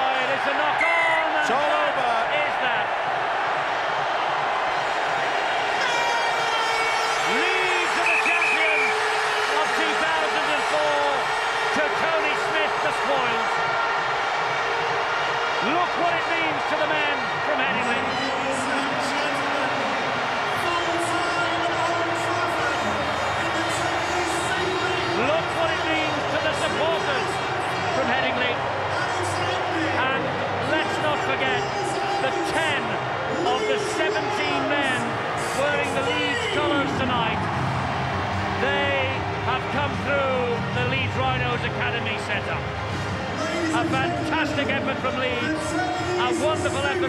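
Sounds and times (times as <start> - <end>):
crowd shouting and singing: 0.0 - 47.0
music: 0.0 - 47.0.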